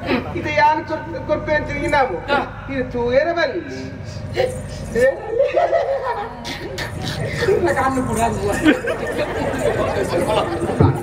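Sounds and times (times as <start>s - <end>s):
voices chattering: 3.7s - 11.0s.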